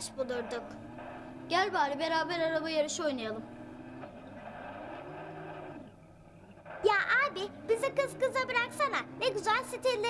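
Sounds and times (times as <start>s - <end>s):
video game car engine hum: 0.0s - 10.0s.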